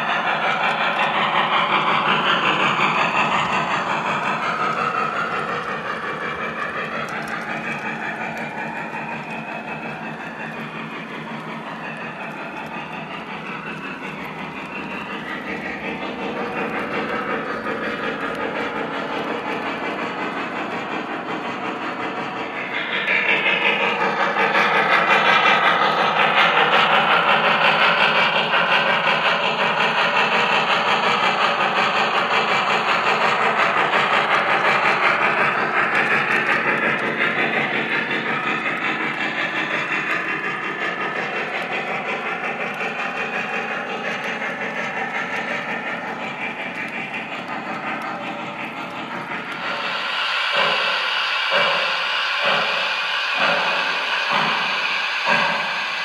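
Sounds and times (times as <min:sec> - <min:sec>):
model train rolling and clattering: 0:00.0 - 0:56.0.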